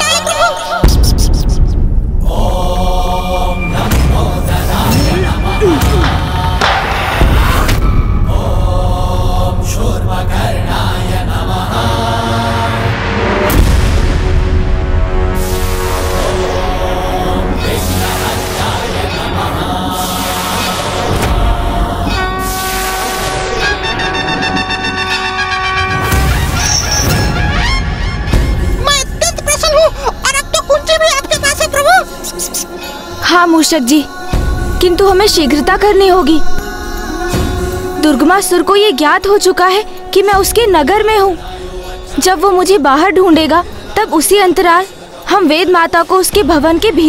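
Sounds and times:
held chant-like vocal: 1.9s - 25.4s, 29.1s - 47.0s
held brassy chord: 22.1s - 26.3s.

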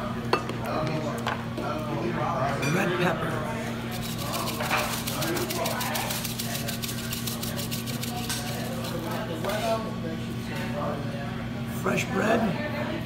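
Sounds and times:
pepper flakes rattling in shaker: 3.9s - 9.4s.

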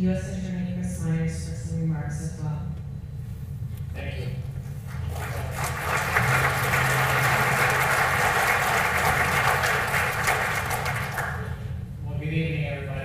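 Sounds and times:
audience applauding: 4.8s - 11.7s.

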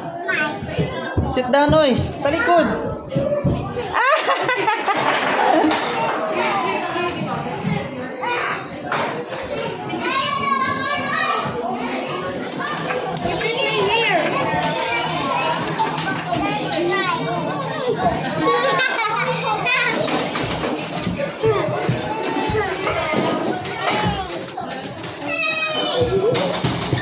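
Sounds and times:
children chattering and calling: 0.0s - 27.0s.

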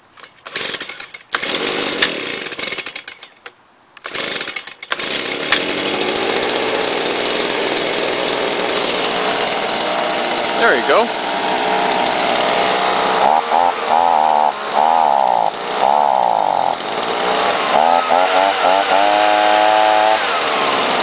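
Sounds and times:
leaf blower engine starting: 0.2s - 3.3s, 4.0s - 21.0s.

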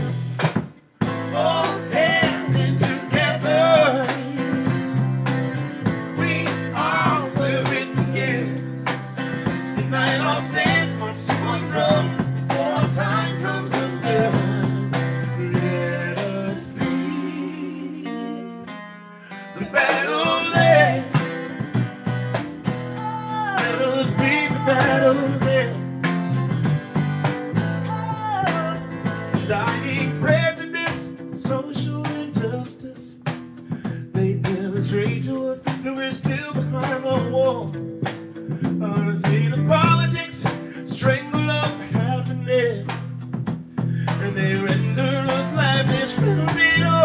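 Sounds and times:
drum kit: 0.0s - 17.7s, 19.6s - 47.0s
acoustic guitar: 0.0s - 47.0s
electric bass guitar: 0.0s - 47.0s
man singing: 1.2s - 4.8s, 6.1s - 8.9s, 9.8s - 18.0s, 19.5s - 21.2s, 23.2s - 25.8s, 27.8s - 33.3s, 33.9s - 37.8s, 38.6s - 43.1s, 44.0s - 47.0s.

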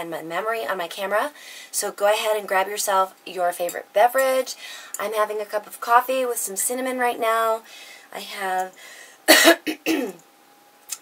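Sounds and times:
woman coughing: 9.3s - 10.2s.

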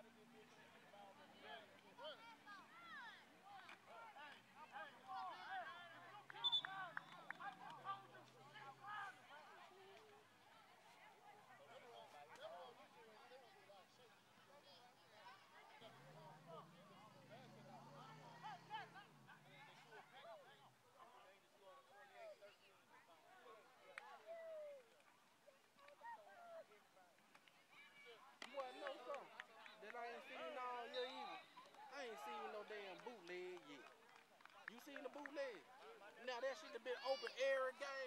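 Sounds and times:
indistinct talk of people: 0.0s - 38.0s.

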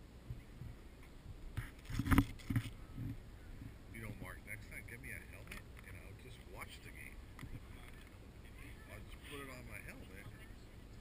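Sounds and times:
thumps and rubbing noises: 1.5s - 3.2s.

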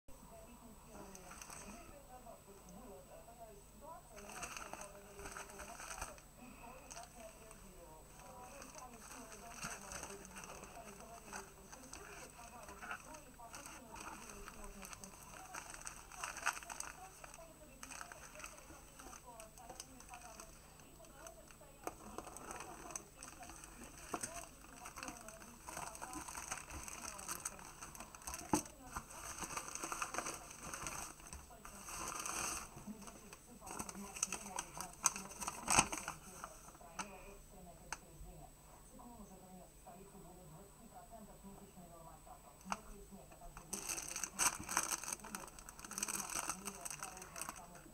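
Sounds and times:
faint voices: 0.1s - 47.9s
plastic bag crinkling: 4.2s - 37.2s, 43.6s - 47.9s.

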